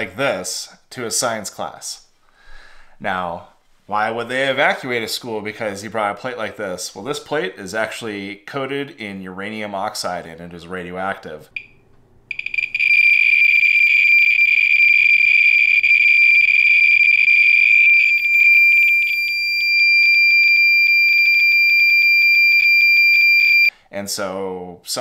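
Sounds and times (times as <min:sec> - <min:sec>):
radiation meter clicks and buzz: 0:11.6 - 0:20.0.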